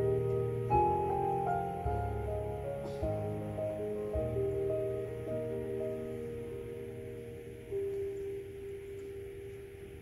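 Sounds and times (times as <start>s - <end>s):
grand piano note ringing: 0.0s - 10.0s.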